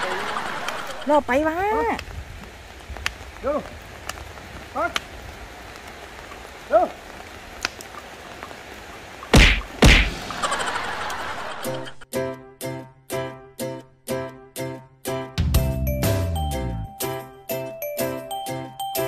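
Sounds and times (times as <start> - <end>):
loud sharp thumps: 9.3 - 10.5
music: 11.6 - 19.0.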